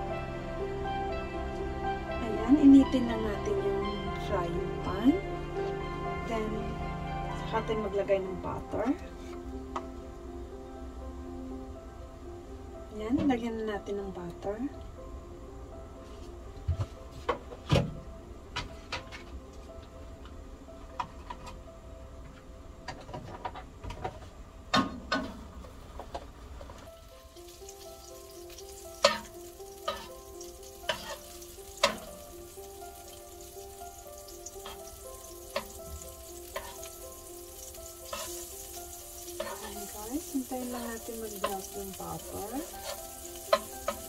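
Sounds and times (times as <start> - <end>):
butter sizzling: 26.9 - 44.0.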